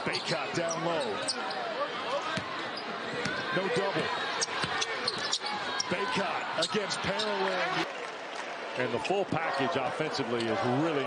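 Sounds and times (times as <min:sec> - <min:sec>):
arena crowd noise: 0:00.0 - 0:11.0
sneaker squeaks: 0:00.1 - 0:01.7, 0:04.4 - 0:06.0.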